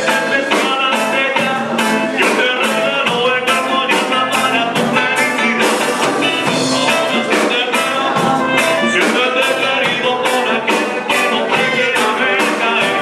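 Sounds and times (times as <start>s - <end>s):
live band playing upbeat song: 0.0s - 13.0s.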